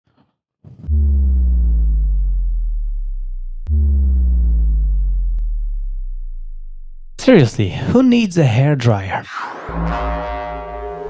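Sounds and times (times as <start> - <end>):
deep synthesized bass hits: 0.8 - 7.3.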